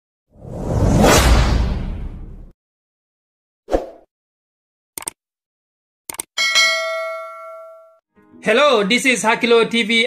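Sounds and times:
notification bell ding: 6.4s - 8.0s.

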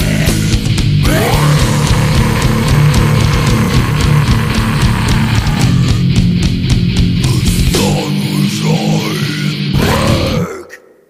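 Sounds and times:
distorted electric guitars: 0.0s - 10.7s.

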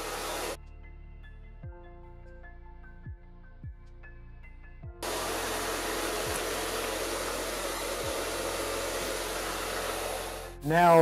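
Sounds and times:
hair dryer blowing: 0.0s - 0.6s, 5.0s - 10.6s.

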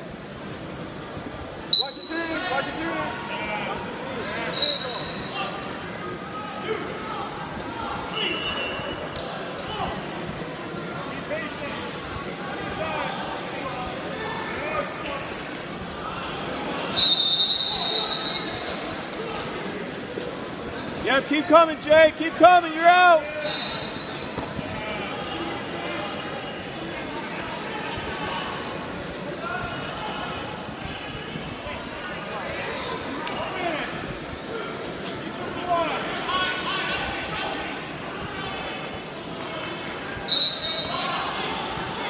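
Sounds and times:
crowd chatter: 0.0s - 42.0s
referee whistle blasts: 1.7s - 2.4s, 4.5s - 5.3s, 17.0s - 18.6s, 23.4s - 24.2s, 40.3s - 41.1s.

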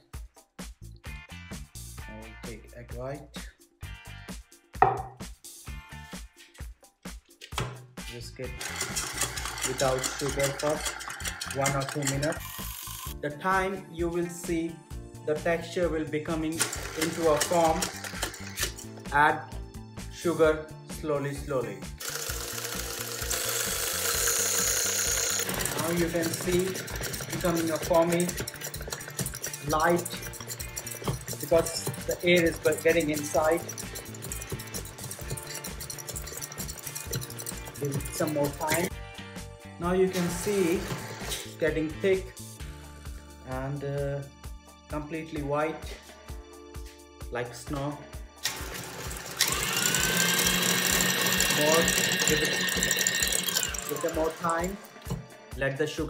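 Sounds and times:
stand mixer whisking in metal bowl: 8.6s - 13.2s, 16.5s - 18.7s, 22.0s - 38.9s, 40.2s - 41.5s, 48.5s - 55.2s.

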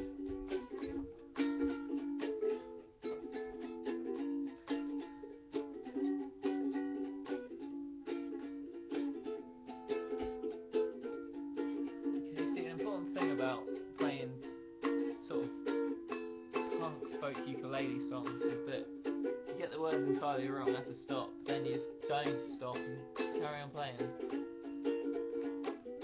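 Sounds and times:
ukulele strumming: 0.0s - 26.0s.

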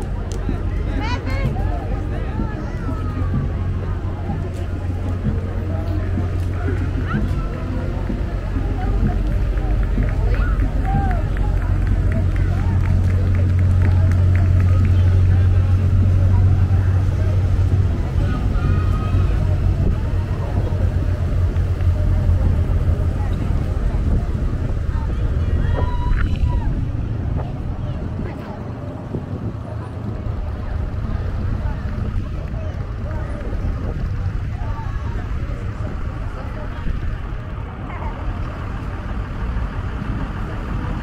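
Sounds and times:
crowd chatter: 0.0s - 41.0s
low engine rumble: 0.0s - 41.0s
vehicles going by: 0.0s - 41.0s.

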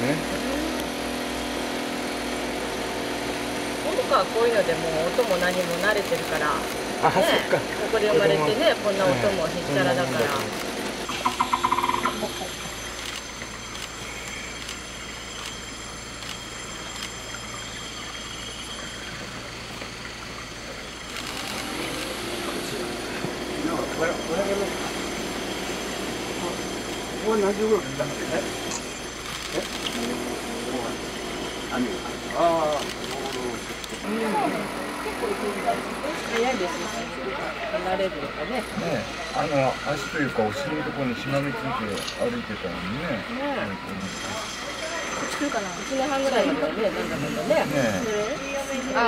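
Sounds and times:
machine engine humming: 0.0s - 49.0s
outdoor background din: 0.0s - 49.0s.

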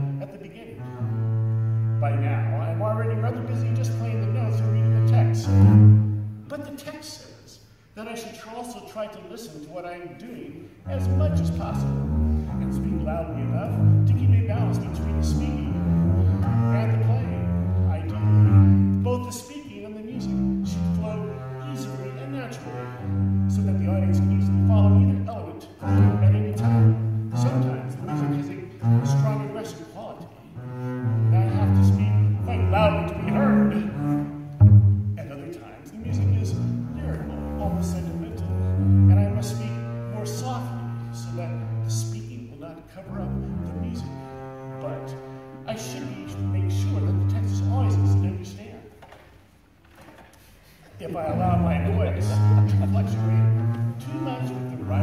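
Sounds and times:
bowed double bass: 0.0s - 6.6s, 9.7s - 49.4s, 50.8s - 55.0s
faint room noise: 0.0s - 55.0s.

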